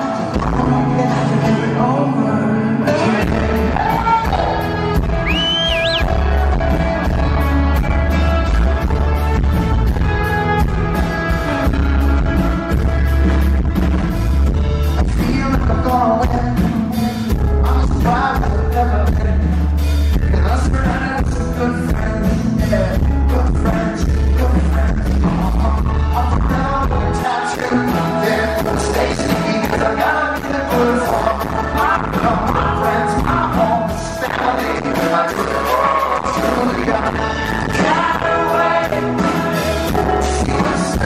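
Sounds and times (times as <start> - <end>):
male singer: 0.0 - 7.4, 14.8 - 41.0
heavy bass: 0.0 - 41.0
live rock band playing: 0.0 - 41.0
steady drums: 3.0 - 41.0.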